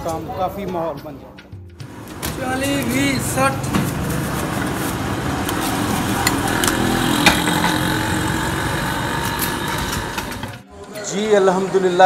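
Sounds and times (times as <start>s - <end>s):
motorcycle engine running: 1.8s - 10.6s.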